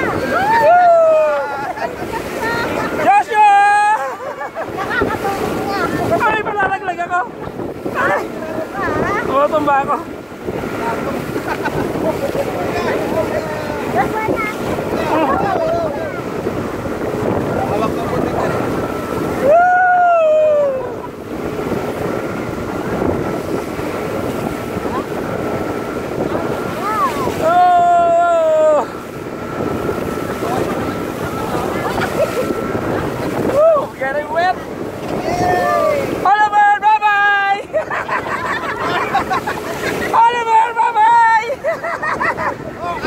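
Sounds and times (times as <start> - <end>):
people shouting: 0.0 - 1.7, 35.1 - 36.2
water rushing: 0.0 - 43.0
wind buffeting microphone: 0.0 - 43.0
people whooping: 0.1 - 1.8, 19.4 - 21.1.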